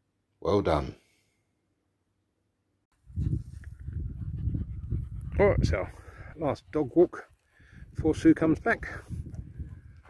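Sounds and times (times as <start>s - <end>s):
dog panting: 3.1s - 8.0s.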